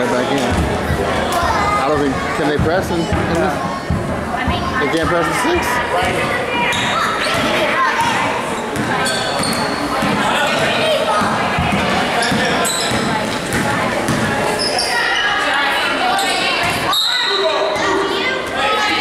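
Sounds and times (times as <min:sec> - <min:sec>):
spectators' voices echoing: 0:00.0 - 0:19.0
sneaker squeaks: 0:06.0 - 0:15.5, 0:16.1 - 0:18.0
basketball dribbling on gym floor: 0:11.2 - 0:14.3
referee's whistle: 0:16.9 - 0:17.6.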